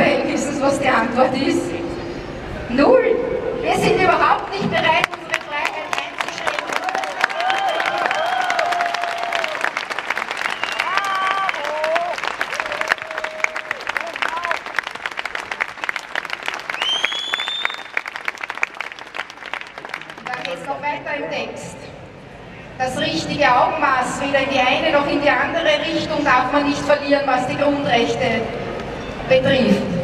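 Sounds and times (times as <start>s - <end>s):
crowd applauding: 4.9s - 20.7s
high rising whistle: 16.7s - 18.0s.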